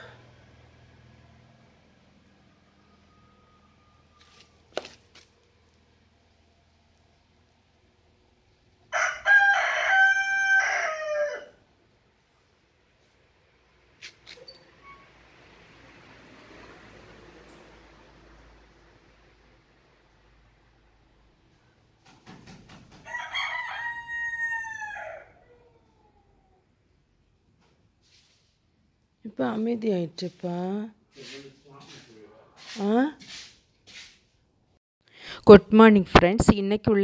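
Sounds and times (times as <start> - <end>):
rooster crowing: 0.0 - 0.5, 8.9 - 11.6, 23.0 - 26.4.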